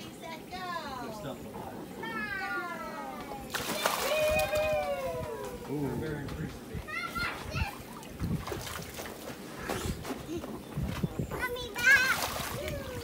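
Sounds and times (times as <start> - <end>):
water splashing in a pool: 3.4 - 5.9, 6.9 - 9.8, 11.8 - 13.0
child's voice: 6.8 - 8.0, 11.2 - 13.0.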